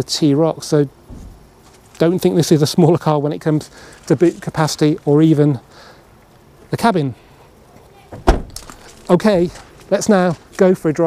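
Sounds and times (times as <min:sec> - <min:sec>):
car tailgate shutting thud: 0:01.1 - 0:01.4, 0:08.1 - 0:08.8.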